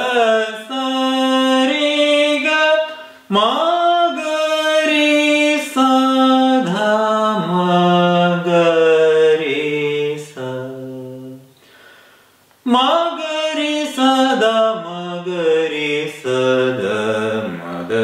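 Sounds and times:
man singing unaccompanied: 0.0s - 11.6s, 12.6s - 18.0s.

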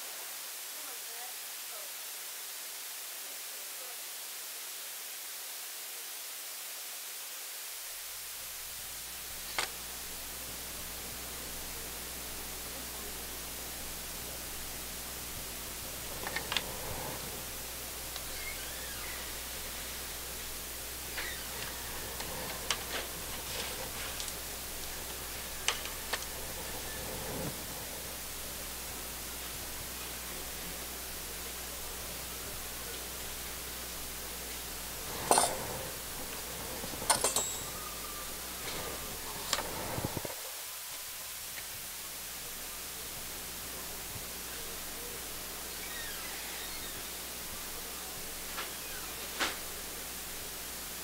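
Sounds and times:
background hiss: 0.0s - 51.0s
metal tools clicking and clinking: 37.1s - 37.8s.

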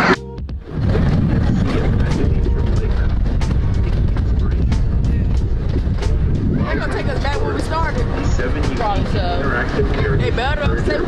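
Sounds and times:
track clacks: 0.6s - 11.0s
miniature train rumble: 0.8s - 11.0s.

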